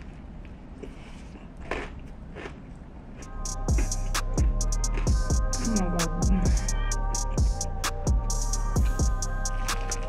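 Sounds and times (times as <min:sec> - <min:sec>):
crunchy bites and chewing: 0:01.6 - 0:02.7
hip-hop music with heavy drums: 0:03.2 - 0:10.0.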